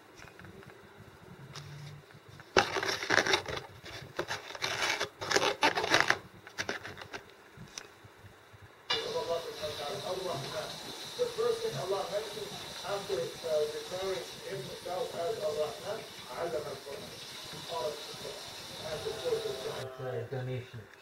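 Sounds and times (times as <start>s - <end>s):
foam container scraping and clicking: 2.4s - 7.2s
steady hiss: 5.9s - 21.0s
faint voices: 8.9s - 20.8s.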